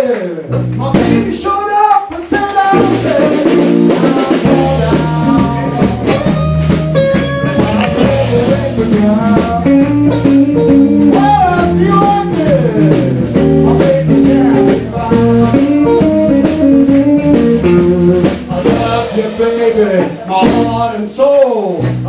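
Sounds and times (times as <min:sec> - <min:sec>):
blues band playing: 0:00.0 - 0:22.0
electric guitar lead lines: 0:02.7 - 0:20.8.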